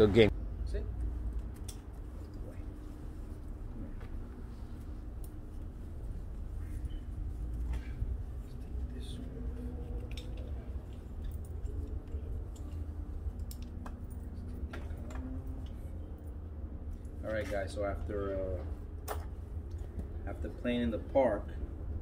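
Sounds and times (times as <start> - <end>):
faint hum: 0.0 - 22.0
steady low rumble: 0.0 - 22.0
buckle and strap clicks: 1.3 - 2.4, 9.4 - 15.8.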